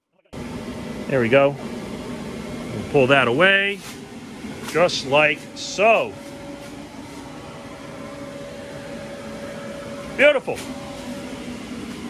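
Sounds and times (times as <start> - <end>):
blower fan humming: 0.3 - 12.0.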